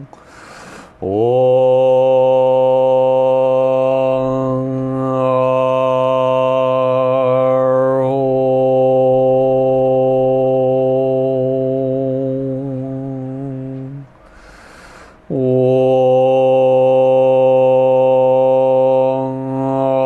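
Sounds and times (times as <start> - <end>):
man chanting: 0.0 - 0.2, 0.9 - 14.2, 15.2 - 20.0.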